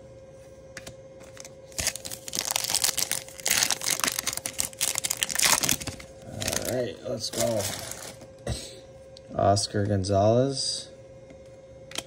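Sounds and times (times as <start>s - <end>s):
foil wrapper tearing and crinkling: 1.3s - 8.2s.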